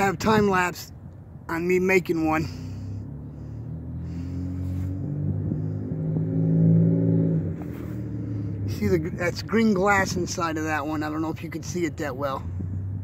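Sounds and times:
vehicle engine hum: 0.0 - 13.0.

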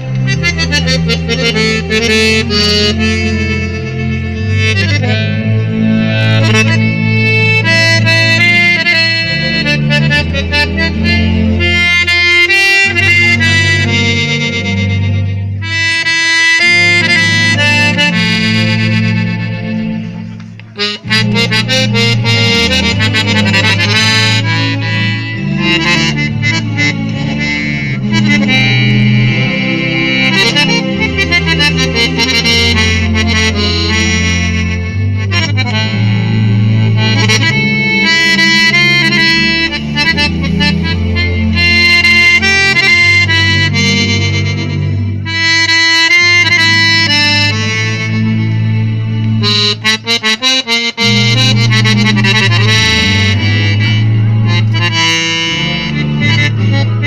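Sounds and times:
piano accordion playing a tune: 0.0 - 57.0.

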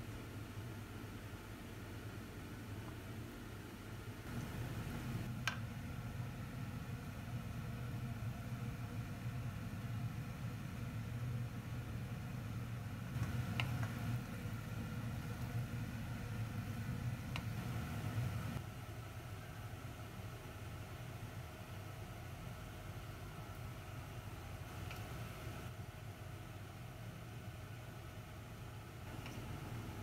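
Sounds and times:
low kitchen hum: 0.0 - 30.0.

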